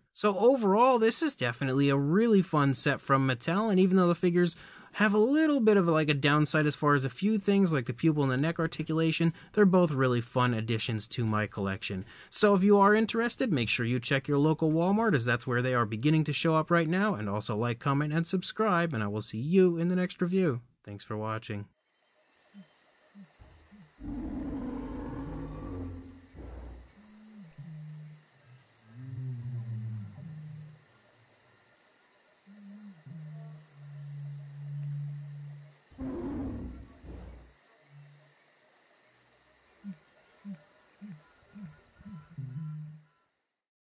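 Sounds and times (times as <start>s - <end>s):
low growling calls: 22.6s - 30.9s, 32.5s - 38.2s, 39.8s - 43.2s
animal roaring: 23.5s - 28.0s, 28.9s - 30.8s, 36.0s - 37.5s.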